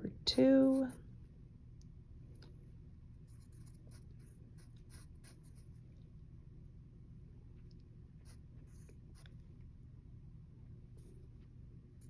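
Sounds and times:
low room hum: 0.0s - 12.0s
pencil scratching on paper: 0.6s - 1.0s, 3.3s - 5.7s.

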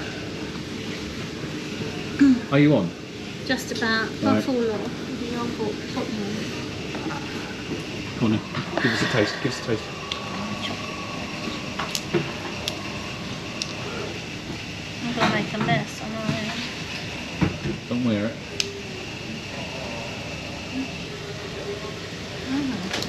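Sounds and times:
thin high hum: 0.0s - 23.0s.

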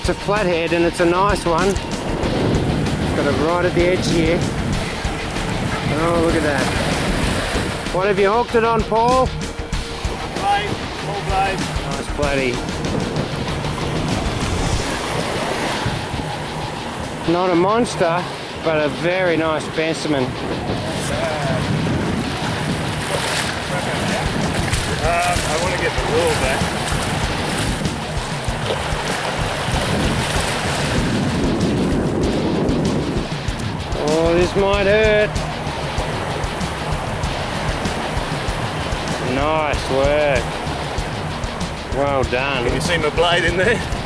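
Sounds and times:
small waves washing on shore: 0.0s - 44.0s
wind buffeting microphone: 0.0s - 44.0s.

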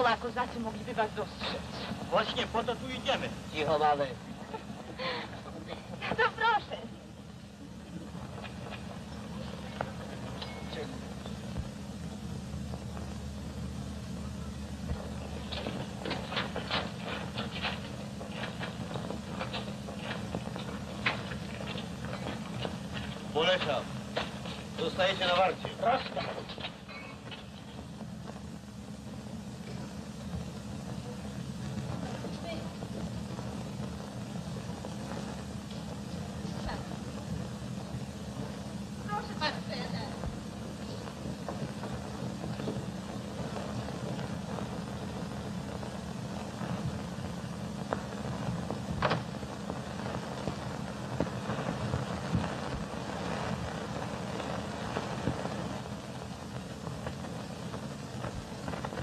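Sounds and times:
film soundtrack hum and hiss: 0.0s - 59.0s.

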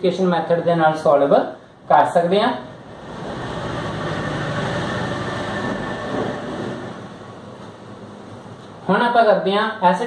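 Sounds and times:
vehicle passing: 2.6s - 7.4s.

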